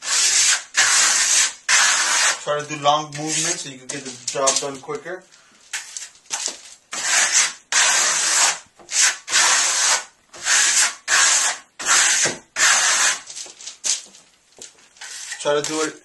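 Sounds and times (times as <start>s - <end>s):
trowel scraping plaster on wall: 0.0s - 4.9s, 6.9s - 13.4s, 14.9s - 16.0s.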